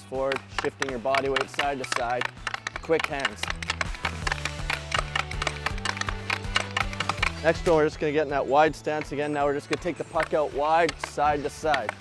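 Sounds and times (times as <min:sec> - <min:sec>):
hockey stick tapping puck on concrete: 0:00.0 - 0:08.0, 0:08.7 - 0:12.0
background music with low bass: 0:00.0 - 0:12.0.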